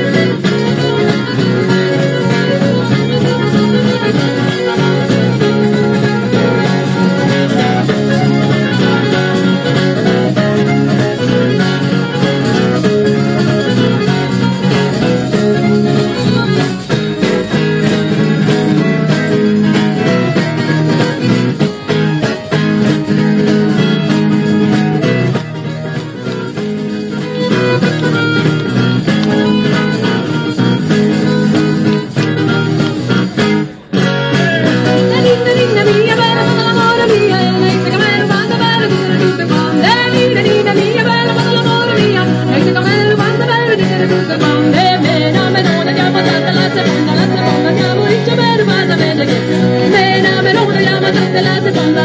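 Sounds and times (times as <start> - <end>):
accordion: 0.0 - 52.0
acoustic guitar: 0.0 - 52.0.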